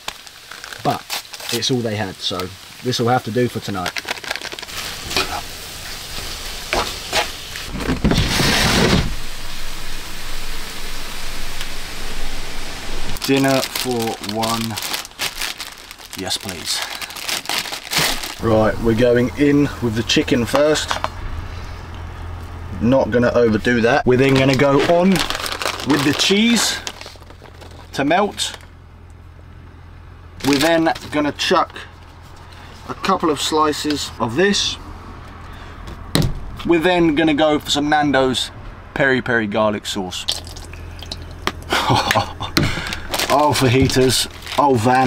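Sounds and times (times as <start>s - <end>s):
steady low hum: 4.6s - 36.7s
man laughing breathily: 41.6s - 43.1s
man's voice: 43.3s - 45.0s.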